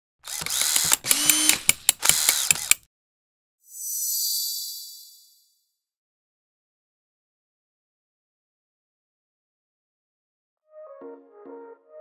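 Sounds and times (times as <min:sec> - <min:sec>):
mechanical ratcheting and clicking: 0:00.2 - 0:02.9.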